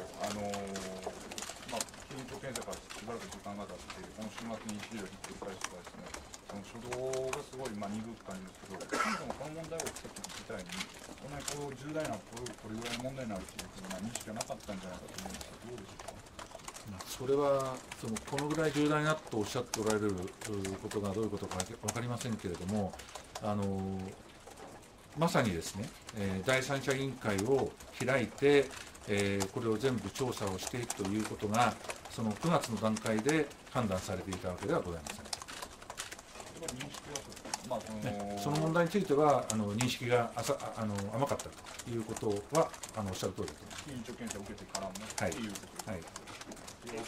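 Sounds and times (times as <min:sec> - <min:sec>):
man asking question: 0:36.6 - 0:46.1.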